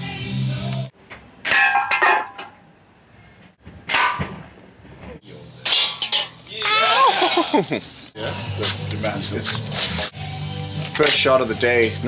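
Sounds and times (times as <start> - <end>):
pellets clanging on metal cans: 1.5 - 2.6, 5.6 - 6.5
people laughing: 6.6 - 8.0.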